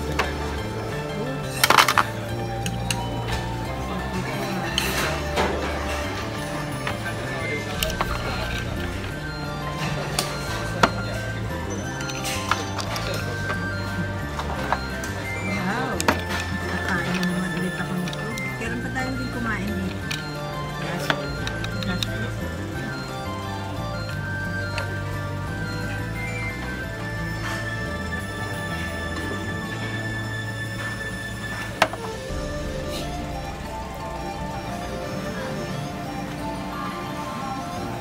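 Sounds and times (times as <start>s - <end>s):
background music with bass line: 0.0s - 38.0s
tableware clinking: 0.0s - 38.0s.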